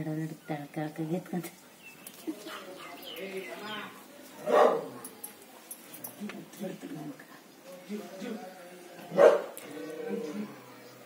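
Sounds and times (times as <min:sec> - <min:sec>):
faint background voices: 0:00.0 - 0:11.0
dog bark: 0:04.4 - 0:05.0, 0:09.1 - 0:09.6.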